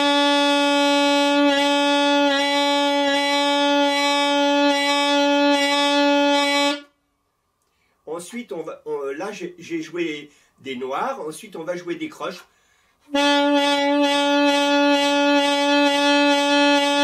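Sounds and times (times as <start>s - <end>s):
saxophone long note with vibrato: 0.0s - 6.9s, 13.1s - 17.0s.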